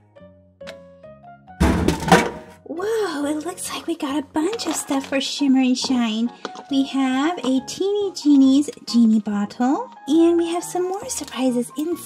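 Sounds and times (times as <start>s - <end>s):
toy packages thudding and clattering: 1.6s - 2.6s.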